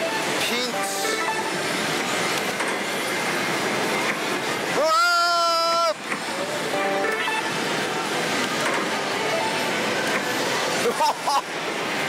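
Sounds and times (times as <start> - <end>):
slot machine electronic sounds and music: 0.0 - 1.9.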